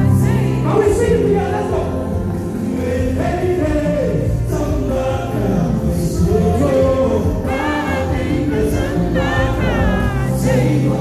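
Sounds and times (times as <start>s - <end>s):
amplified backing music with bass: 0.0s - 11.0s
man singing into microphone: 0.0s - 11.0s
voices singing along: 0.0s - 11.0s.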